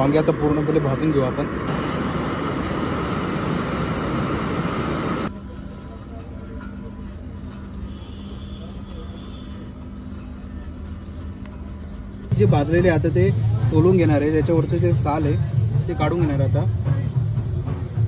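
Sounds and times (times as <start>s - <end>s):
fire rushing: 0.0s - 5.3s
low steady hum: 0.0s - 8.7s.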